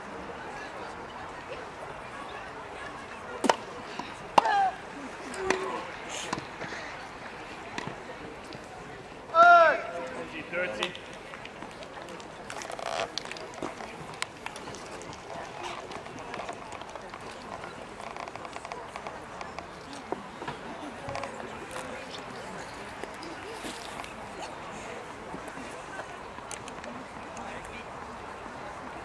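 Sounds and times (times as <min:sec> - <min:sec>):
background chatter of voices: 0:00.0 - 0:29.0.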